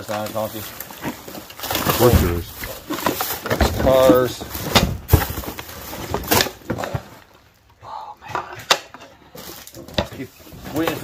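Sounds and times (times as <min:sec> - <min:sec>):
hard objects clattering in box: 0:00.0 - 0:07.4, 0:08.3 - 0:11.0.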